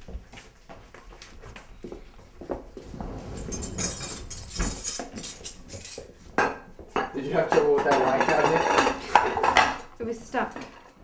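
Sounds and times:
dishes clattering: 3.0 - 9.9
dishes and cutlery clinking: 3.2 - 9.9.

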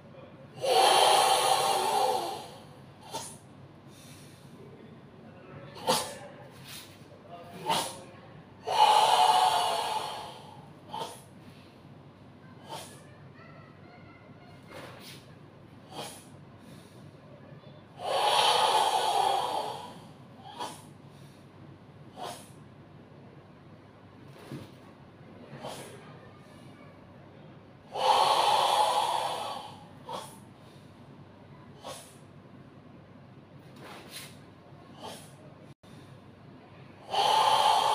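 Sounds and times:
loud hissing exhale: 0.6 - 4.6, 8.6 - 11.8, 12.6 - 13.0, 15.9 - 17.1, 18.0 - 21.5, 22.2 - 22.6, 25.6 - 26.0, 27.9 - 31.0, 31.8 - 32.2, 35.0 - 35.4, 37.0 - 37.9
short sharp breaths: 0.6 - 4.8, 14.7 - 17.3, 27.9 - 31.2, 31.8 - 32.2, 33.8 - 36.3, 37.0 - 37.9.

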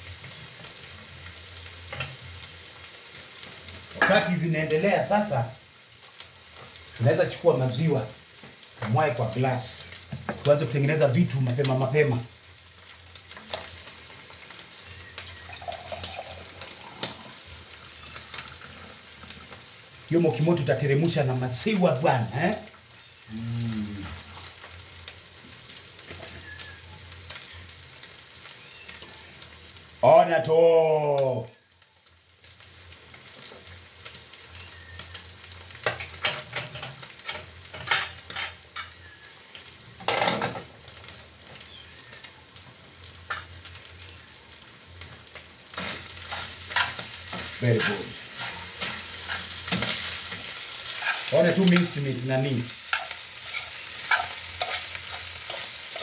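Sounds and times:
meat sizzling in a pan: 0.0 - 56.0.

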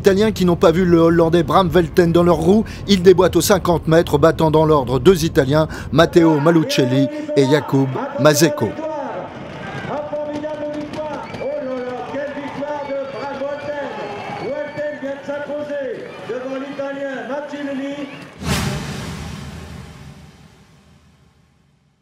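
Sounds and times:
man shouting over loudspeakers: 6.0 - 18.3
loud crash: 18.4 - 22.0.

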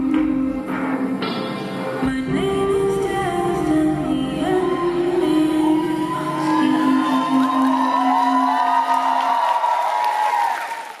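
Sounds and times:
audience cheering and whooping: 5.1 - 11.0.

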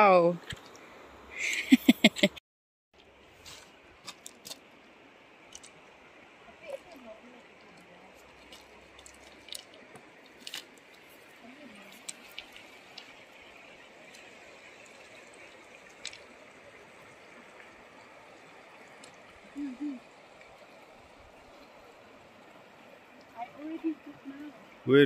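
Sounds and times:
flowing river water: 0.0 - 2.0, 3.0 - 25.0.

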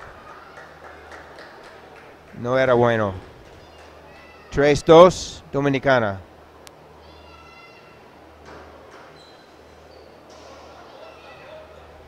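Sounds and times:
short high squeaks: 9.1 - 10.5.

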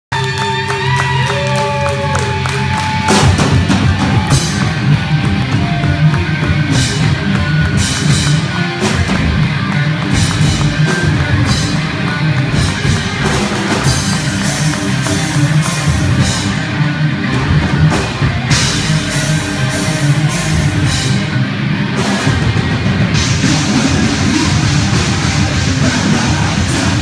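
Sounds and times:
drum kit: 0.1 - 27.0
held electric guitar notes: 0.1 - 27.0
rock band playing: 0.1 - 27.0.

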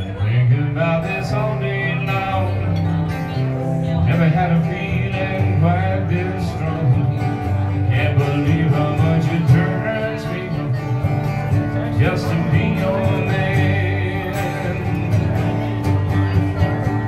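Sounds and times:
acoustic guitar strummed: 0.0 - 17.0
man singing: 0.0 - 17.0.

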